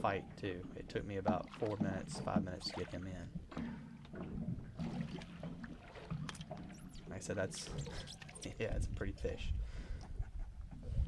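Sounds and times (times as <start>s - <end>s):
water lapping against boat hull: 0.0s - 11.0s.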